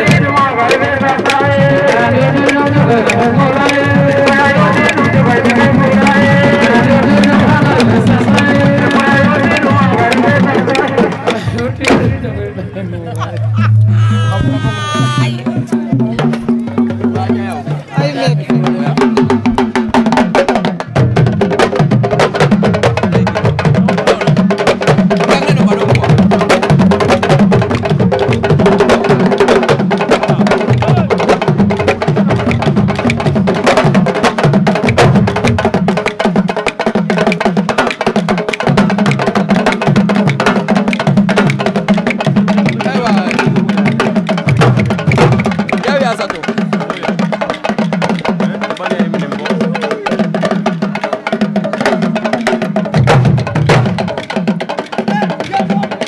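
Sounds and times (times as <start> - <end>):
voices: 0.0 - 20.1, 22.8 - 27.4, 28.2 - 33.2, 42.5 - 44.3, 45.5 - 52.7, 54.0 - 56.0
drum ensemble playing fast rhythms: 0.0 - 56.0.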